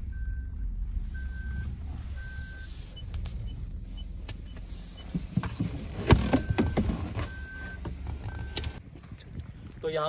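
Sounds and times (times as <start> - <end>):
car electronic beeps: 0.0 - 8.8
car engine rumble: 0.0 - 10.0.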